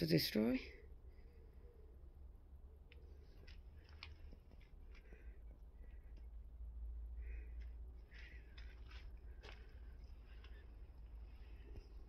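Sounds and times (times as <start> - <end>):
low steady rumble: 0.6 - 12.0
faint rustles: 2.9 - 12.0.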